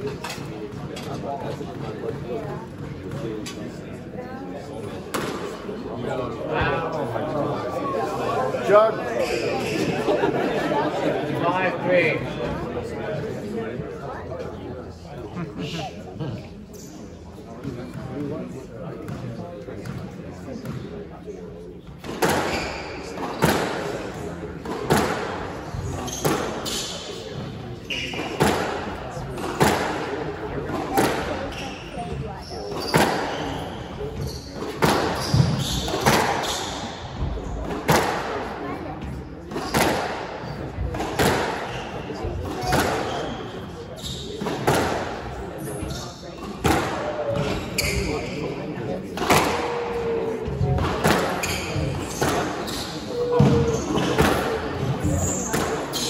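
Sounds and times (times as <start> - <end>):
squash ball hitting racket and walls: 4.7 - 5.8, 21.9 - 48.4, 49.1 - 56.0
shoes squeaking on hardwood floor: 9.1 - 10.0, 31.5 - 36.7, 47.4 - 48.4.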